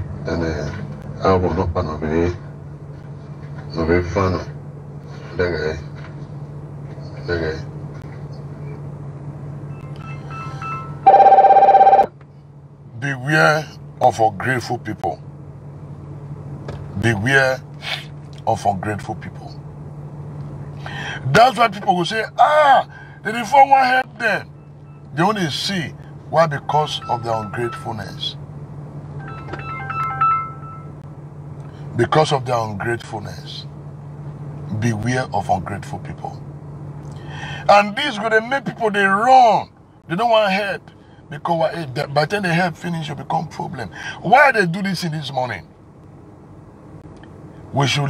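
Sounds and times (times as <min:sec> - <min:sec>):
low hum: 0:00.0 - 0:48.0
phone ringing: 0:10.0 - 0:12.1, 0:29.2 - 0:31.0.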